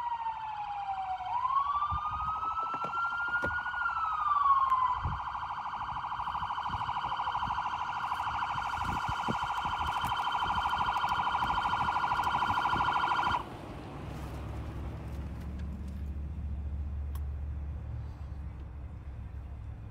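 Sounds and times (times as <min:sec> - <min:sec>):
police siren wailing and yelping: 0:00.0 - 0:13.5.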